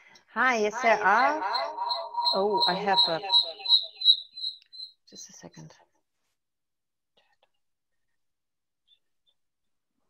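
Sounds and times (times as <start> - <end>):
woman speaking: 0.3 - 3.6, 5.2 - 5.8
pulsing high whistle-like tone: 0.7 - 4.4.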